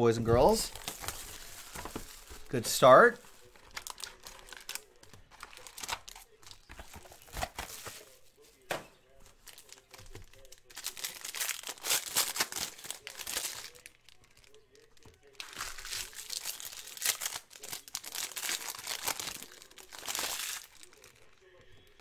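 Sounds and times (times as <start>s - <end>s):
foil wrappers crinkling: 0.4s - 8.6s, 9.2s - 22.0s
packs being torn open: 0.7s - 2.5s, 3.4s - 8.2s, 9.3s - 21.4s.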